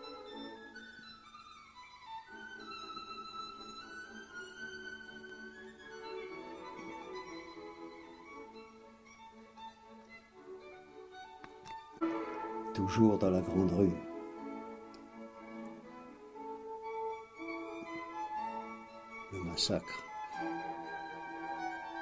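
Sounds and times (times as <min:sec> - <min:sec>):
slow violin melody: 0:00.0 - 0:22.0.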